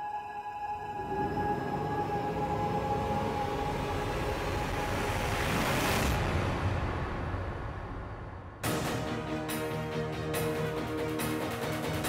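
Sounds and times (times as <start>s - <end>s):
soundtrack riser rush of noise: 1.2s - 9.1s.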